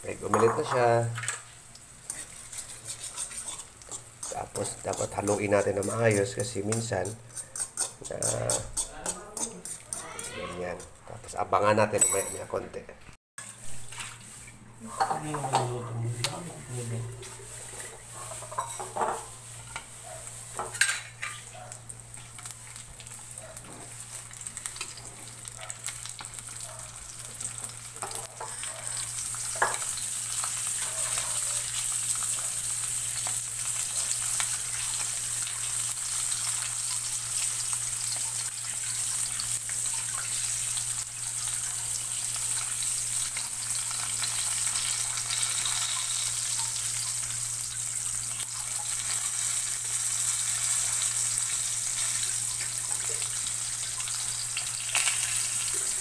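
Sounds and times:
fish frying in hot oil: 0.0s - 10.1s, 13.4s - 56.0s
metal spatula scraping pan: 2.1s - 11.0s, 13.4s - 16.4s, 17.1s - 19.9s, 20.5s - 21.5s.

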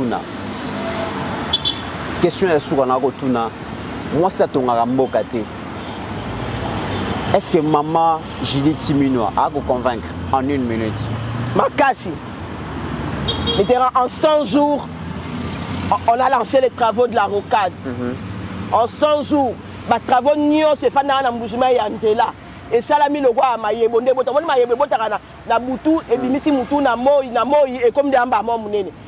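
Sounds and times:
city traffic noise: 0.0s - 29.0s
person speaking: 7.2s - 12.4s, 13.6s - 29.0s.

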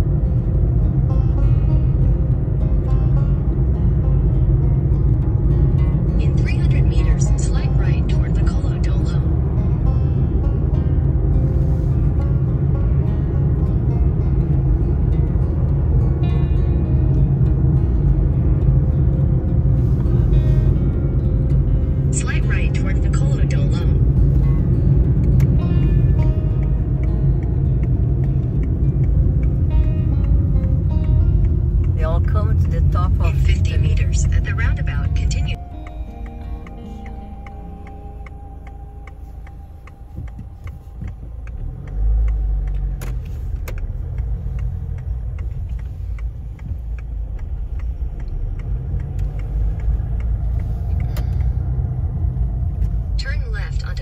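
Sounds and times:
car road noise rumble: 0.0s - 54.0s.

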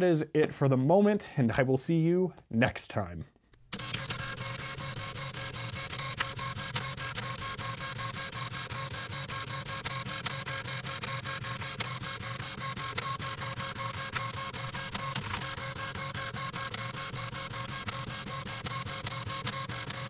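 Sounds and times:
dot-matrix printer rattling: 3.8s - 20.0s
printer clicks: 3.8s - 20.0s.

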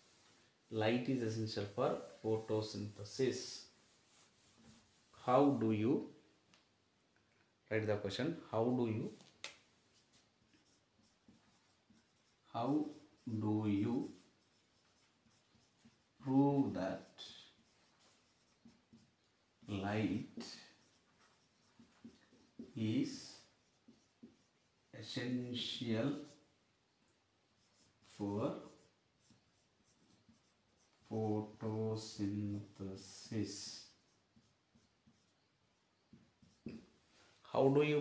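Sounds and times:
person speaking: 0.0s - 6.2s, 7.7s - 26.5s, 27.6s - 35.3s, 36.4s - 38.0s
writing taps and scratches on board: 9.2s - 13.2s, 14.1s - 16.3s, 17.1s - 24.9s, 28.6s - 31.1s, 33.7s - 37.0s
faint taps of writing: 36.1s - 37.0s.

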